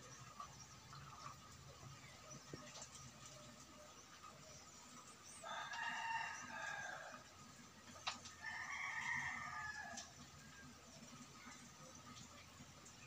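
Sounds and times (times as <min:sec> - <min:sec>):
rooster crowing: 0:05.4 - 0:07.3, 0:08.4 - 0:10.1.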